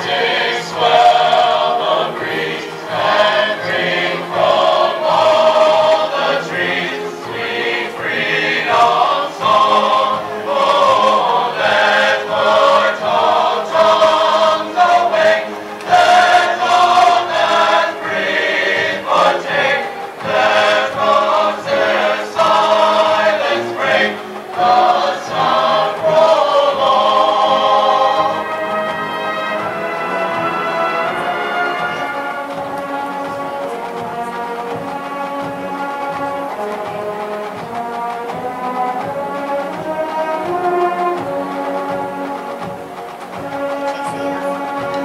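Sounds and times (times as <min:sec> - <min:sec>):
marching band playing chords: 0:00.0 - 0:45.0.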